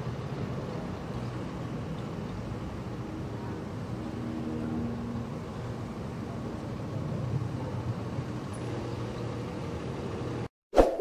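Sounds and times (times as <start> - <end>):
traffic rumble: 0.0 - 10.5.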